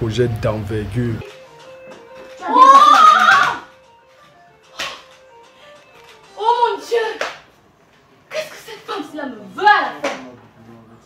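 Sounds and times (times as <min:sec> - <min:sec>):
faint background music: 0:00.0 - 0:11.0
person crying out in distress: 0:02.4 - 0:03.6.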